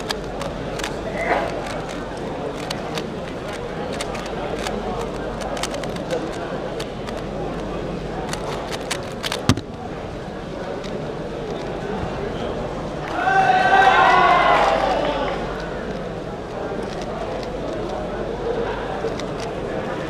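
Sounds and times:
puzzle cube clicking: 0:00.0 - 0:07.6, 0:08.3 - 0:09.8
babble of voices in a hall: 0:00.0 - 0:20.0.

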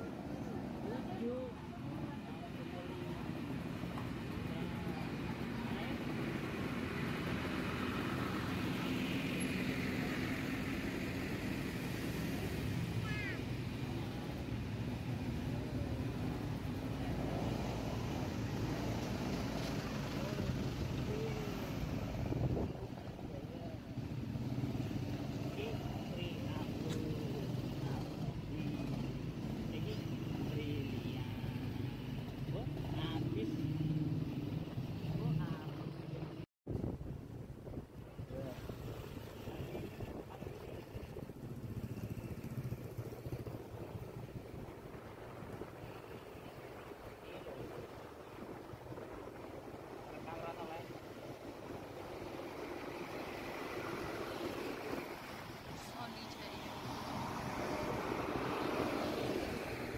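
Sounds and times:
people talking: 0:00.0 - 0:03.6, 0:04.3 - 0:06.3, 0:20.0 - 0:21.8, 0:25.5 - 0:31.6, 0:32.5 - 0:33.8, 0:46.4 - 0:47.9, 0:55.7 - 0:56.8.

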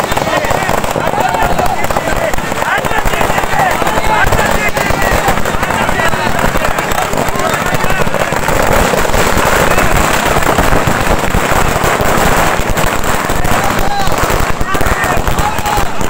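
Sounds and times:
crowd shouting and cheering: 0:00.0 - 0:16.0
firecrackers crackling: 0:00.0 - 0:16.0.

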